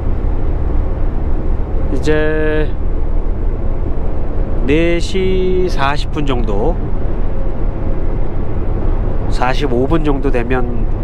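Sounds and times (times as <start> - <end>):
truck engine and tyres cruising: 0.0 - 11.0.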